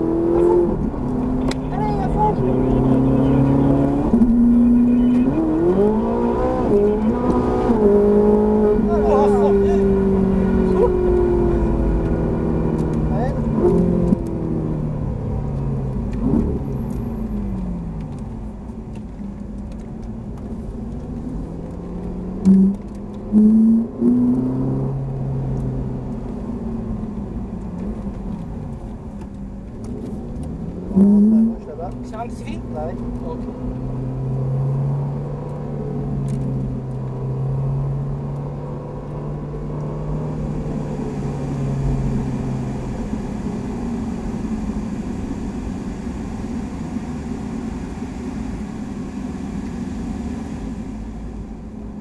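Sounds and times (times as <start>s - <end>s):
sports car engine revving: 0.0s - 52.0s.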